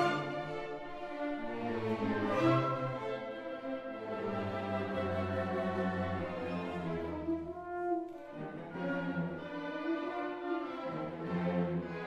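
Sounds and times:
orchestra playing sustained chords: 0.0 - 12.0.

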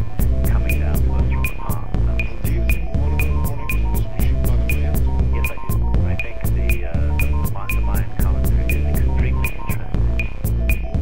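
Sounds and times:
instrumental hip-hop beat: 0.0 - 11.0.

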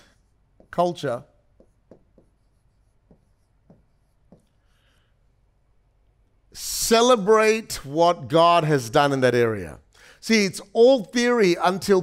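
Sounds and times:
pen strokes on screen: 1.5 - 5.0.

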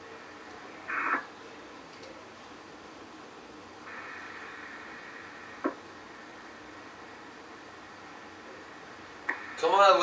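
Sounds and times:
radio channel hiss: 0.0 - 1.8, 3.4 - 10.0
sharp radio click: 0.9 - 1.3, 9.2 - 9.7.

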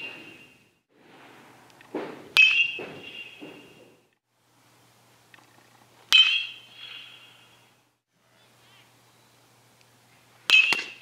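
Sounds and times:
metal bat hitting ball: 0.0 - 0.6, 1.9 - 4.1, 6.1 - 7.2, 10.5 - 11.0.

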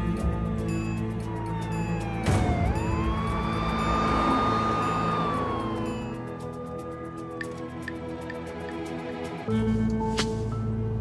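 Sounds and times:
background music: 0.0 - 11.0
police siren wailing: 0.1 - 6.8.

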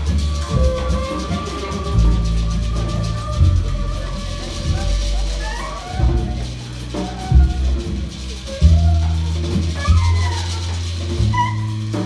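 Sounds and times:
live ensemble music: 0.0 - 12.0.

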